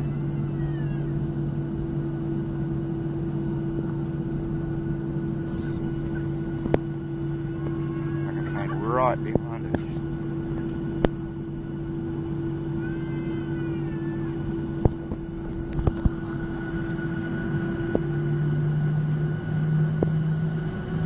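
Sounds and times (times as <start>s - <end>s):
airliner engine drone: 0.0s - 21.0s.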